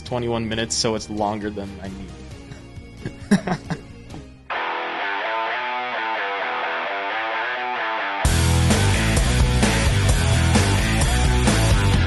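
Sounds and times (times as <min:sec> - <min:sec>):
guitar picking single notes: 0:04.5 - 0:09.8.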